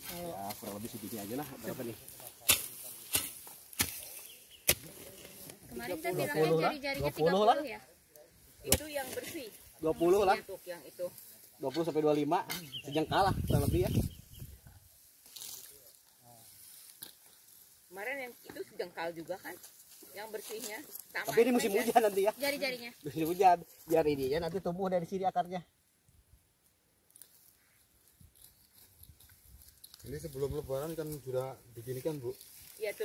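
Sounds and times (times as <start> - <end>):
hand hoe chopping earth: 2.3 - 5.4.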